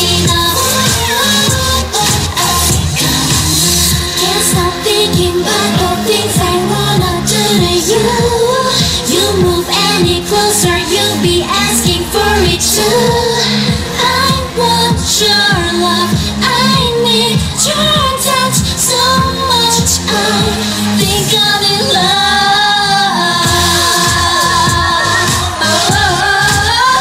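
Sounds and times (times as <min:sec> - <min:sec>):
dance-pop song with female vocals: 0:00.0 - 0:27.0.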